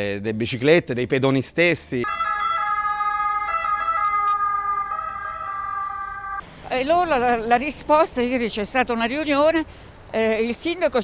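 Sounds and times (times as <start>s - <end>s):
ambulance siren passing: 2.0s - 6.4s.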